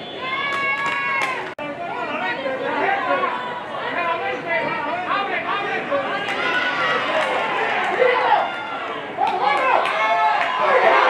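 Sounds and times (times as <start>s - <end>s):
many voices chattering: 0.0s - 11.0s.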